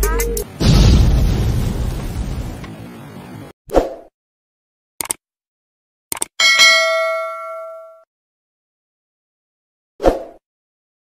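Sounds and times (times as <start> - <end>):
notification bell ding: 6.4 - 8.0.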